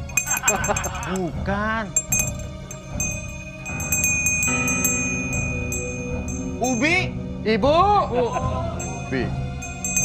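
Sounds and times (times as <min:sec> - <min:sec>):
handbell ringing: 0:00.0 - 0:01.3, 0:02.0 - 0:07.1, 0:08.8 - 0:10.0
eerie music low notes: 0:00.0 - 0:10.0.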